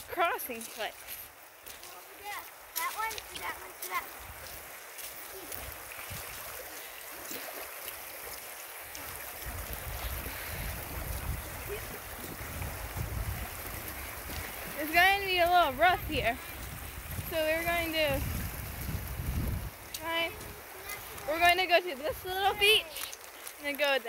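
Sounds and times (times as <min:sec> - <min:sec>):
stream running over gravel: 0:00.0 - 0:24.0.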